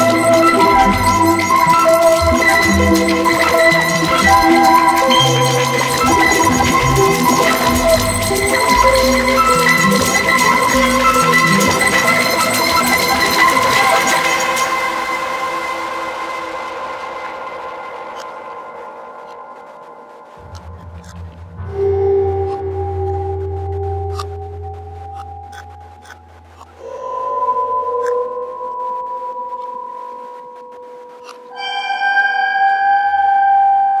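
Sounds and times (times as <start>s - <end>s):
electronic drone metallic tones: 0.0s - 19.5s, 20.4s - 30.2s
soft low throbs: 17.0s - 31.3s.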